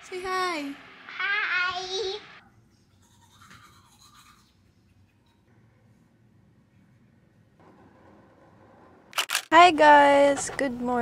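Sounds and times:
toothbrush scrubbing teeth: 2.9 - 5.4.

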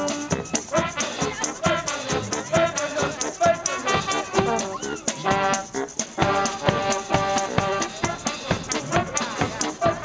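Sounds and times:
brass band playing: 0.0 - 10.0.

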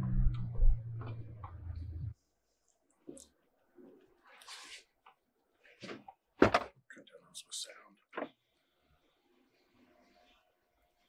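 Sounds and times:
engine running with low hum: 0.0 - 2.2.

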